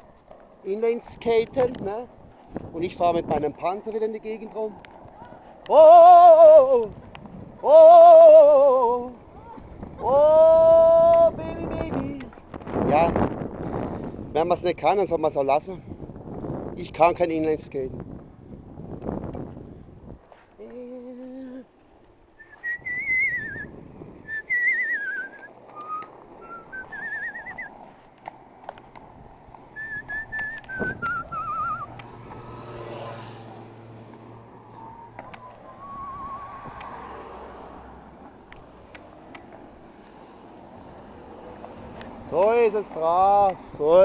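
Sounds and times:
person laughing: 20.6s - 21.7s
person whistling a tune: 22.4s - 23.7s, 24.3s - 27.7s, 29.8s - 32.0s, 34.8s - 36.5s.

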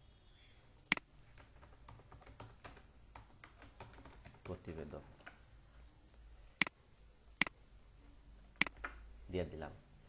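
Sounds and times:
typing on computer keyboard: 0.9s - 5.4s.

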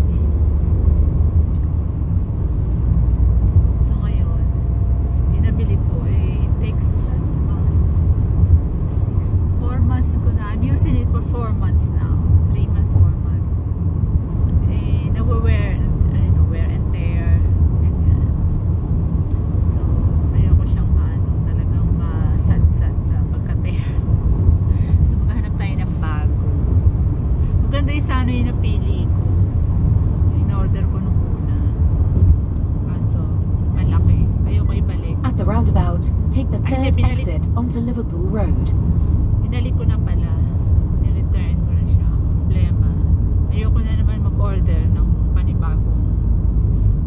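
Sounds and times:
car engine and road rumble: 0.0s - 47.0s
woman talking: 3.8s - 4.6s, 5.3s - 7.7s, 9.6s - 13.4s, 14.7s - 18.4s, 19.6s - 24.1s, 24.8s - 26.4s, 27.6s - 29.1s, 30.3s - 31.8s, 32.9s - 38.8s, 39.4s - 46.0s.

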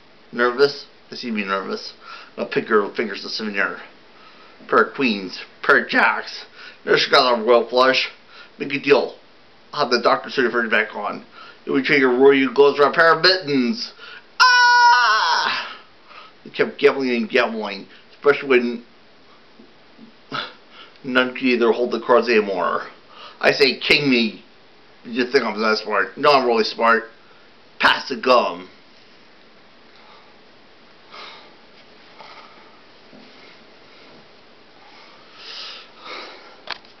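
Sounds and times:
person sniffing: 34.9s - 36.6s.

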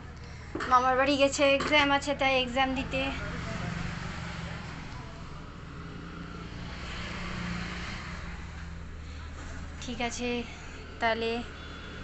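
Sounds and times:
road traffic hum: 0.0s - 12.0s
rushing noise of passing traffic: 0.0s - 12.0s.

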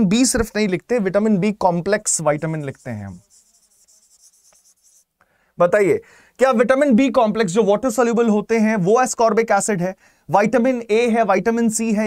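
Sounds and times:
pen scratching and tapping on screen: 2.4s - 5.1s.

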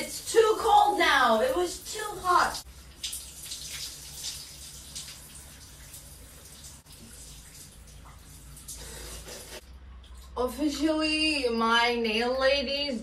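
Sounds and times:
shower water spattering on hair: 0.0s - 9.6s.

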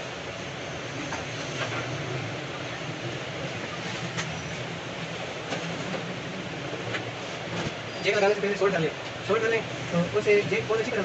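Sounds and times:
machinery hum and hiss: 0.0s - 11.0s.

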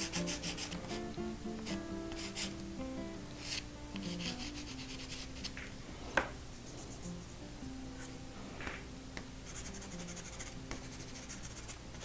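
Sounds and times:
pastel scratching on paper: 0.0s - 0.9s, 1.6s - 2.5s, 3.4s - 5.5s, 9.5s - 12.0s.

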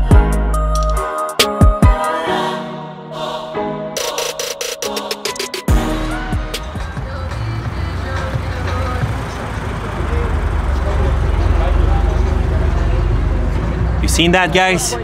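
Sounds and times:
race car engine rumble: 6.5s - 15.0s
crowd chatter: 6.8s - 15.0s.

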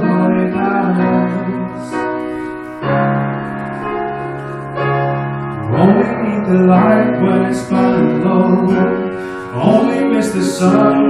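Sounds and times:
person singing: 0.0s - 3.3s, 5.6s - 11.0s
piano sustained chords: 0.0s - 11.0s.

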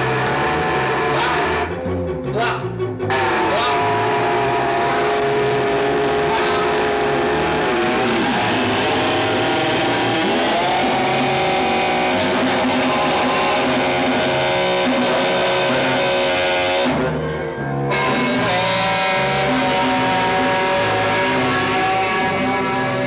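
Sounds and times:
dense amplified drone: 0.0s - 23.0s
shifting low notes: 0.0s - 23.0s.

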